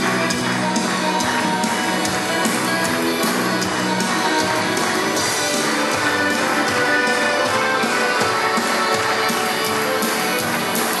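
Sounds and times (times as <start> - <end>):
live worship band music: 0.0 - 11.0.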